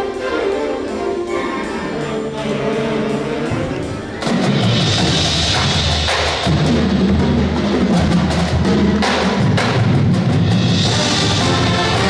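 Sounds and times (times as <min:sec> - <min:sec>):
marching band playing: 0:00.0 - 0:12.0
heavy drum hits: 0:04.2 - 0:12.0.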